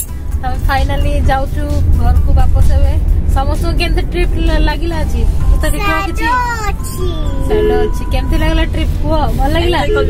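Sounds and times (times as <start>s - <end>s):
low vehicle rumble: 0.0s - 10.0s
voices talking: 5.5s - 8.6s.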